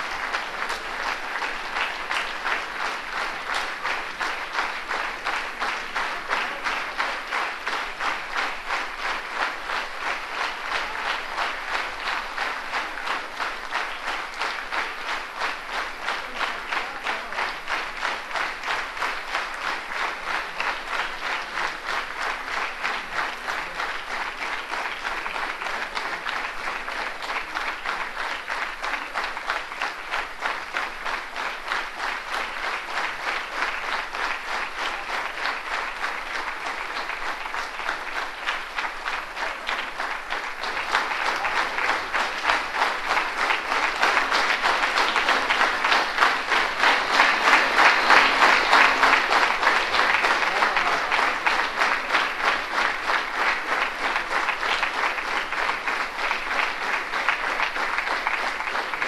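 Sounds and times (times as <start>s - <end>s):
large audience applauding: 0.0s - 59.0s.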